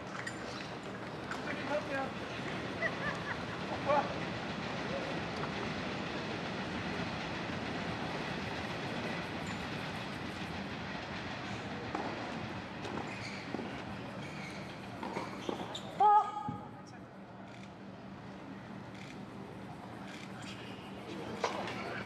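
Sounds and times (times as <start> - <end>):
rail traffic rumbling: 0.0 - 22.0.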